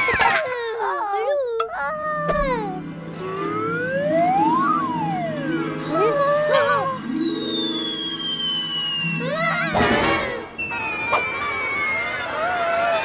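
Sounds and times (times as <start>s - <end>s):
background music: 1.9s - 10.7s
high tone sliding downward: 2.1s - 13.0s
whistle-like glide: 3.2s - 5.8s, 7.0s - 12.3s.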